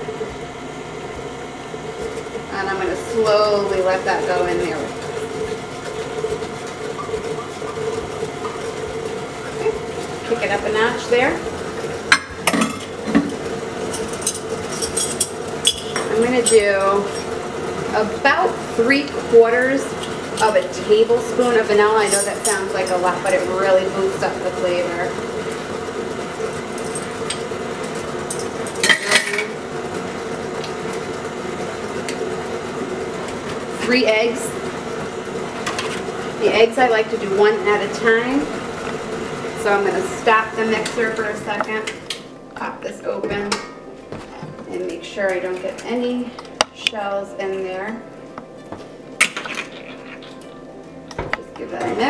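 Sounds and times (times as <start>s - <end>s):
stand mixer motor hum: 0.0s - 42.6s.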